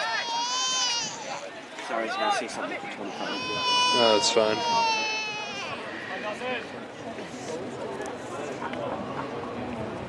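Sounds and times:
long high-pitched cry: 3.1s - 6.1s.

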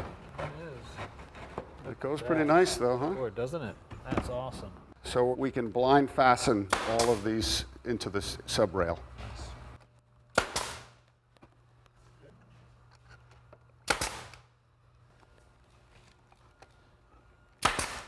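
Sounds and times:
nail gun firing: 6.7s - 7.2s, 10.4s - 11.0s, 13.8s - 14.5s, 17.6s - 18.0s.

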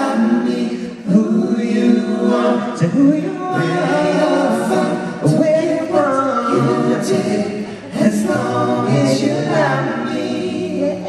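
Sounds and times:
male vocal group singing a cappella: 0.0s - 11.0s.

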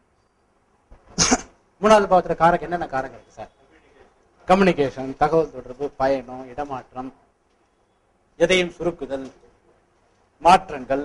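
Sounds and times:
person coughing: 1.2s - 1.6s.

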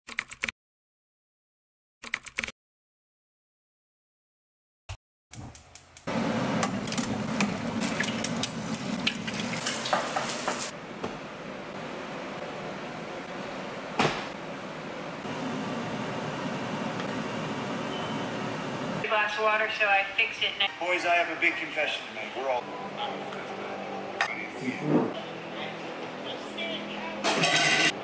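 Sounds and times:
food sizzling in a pan: 7.8s - 10.7s
utensils clattering on dishes: 9.5s - 10.7s, 27.2s - 28.0s.

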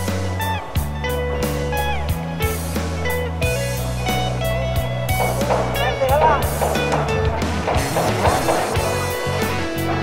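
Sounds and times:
background guitar music: 0.0s - 10.0s.

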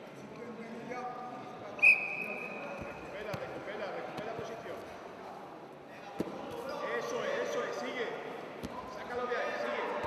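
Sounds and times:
voices calling out in a hall: 0.0s - 10.0s.

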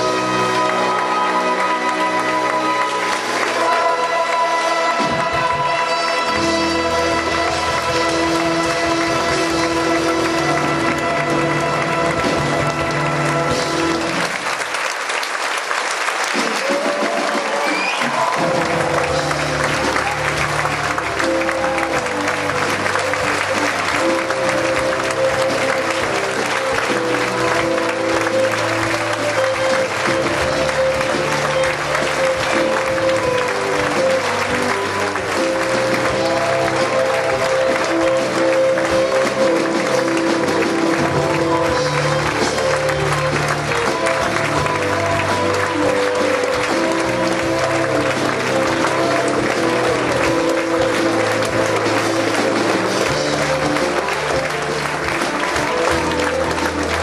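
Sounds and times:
audience applause: 0.0s - 57.0s
orchestra playing: 0.0s - 57.0s.

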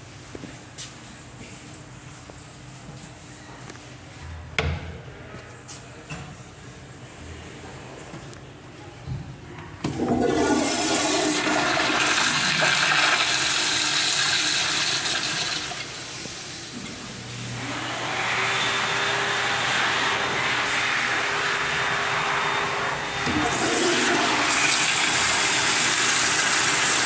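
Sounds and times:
toilet flushing water rush: 9.9s - 16.8s, 23.2s - 27.0s.

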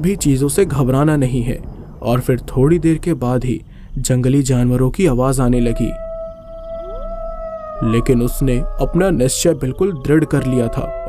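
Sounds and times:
man narrating: 0.0s - 6.0s, 7.8s - 11.0s
animal howling: 5.3s - 11.0s.

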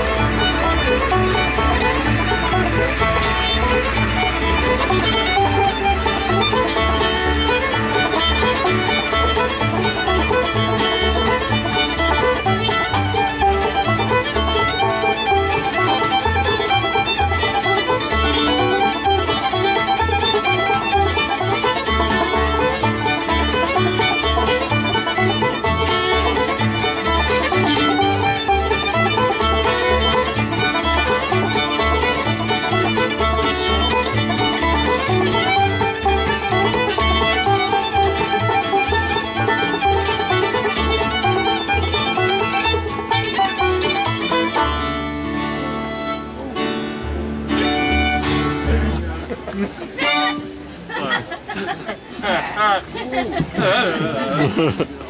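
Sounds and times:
banjo: 0.0s - 55.0s
fiddle playing tune: 0.0s - 55.0s
upright bass plucking: 0.0s - 55.0s.

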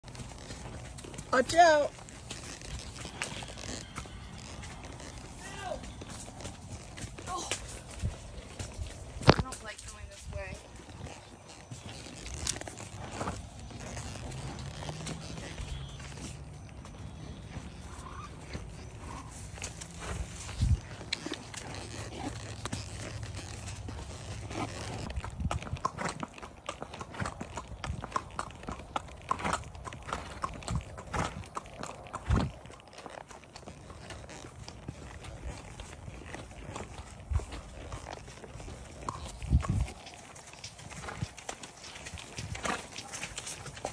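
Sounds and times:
horse hooves on muddy trail: 0.0s - 43.9s.

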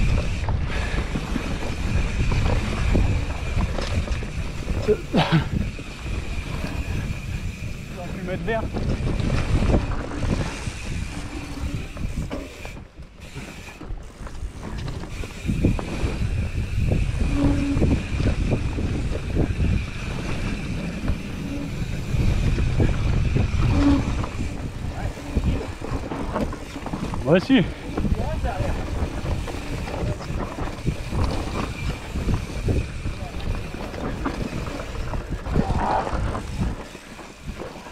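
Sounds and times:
bike rattling over roots: 0.0s - 37.9s
wind on microphone: 0.0s - 37.9s.

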